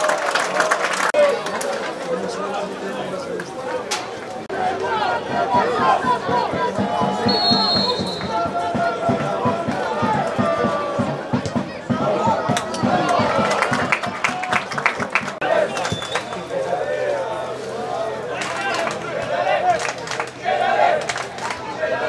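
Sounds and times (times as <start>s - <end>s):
crowd shouting and chanting: 1.1s - 22.0s.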